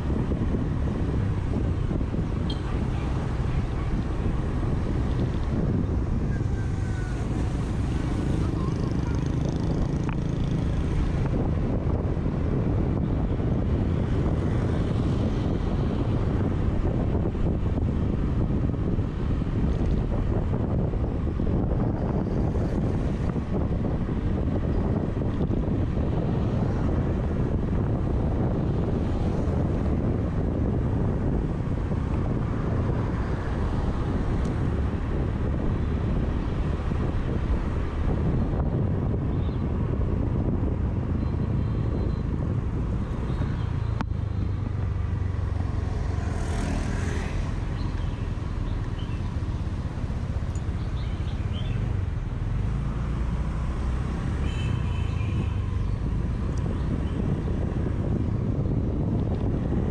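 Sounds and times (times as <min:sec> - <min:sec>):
scooter engine and tyres: 0:00.0 - 0:20.0, 0:20.8 - 0:59.9
wind on microphone: 0:00.0 - 0:59.9.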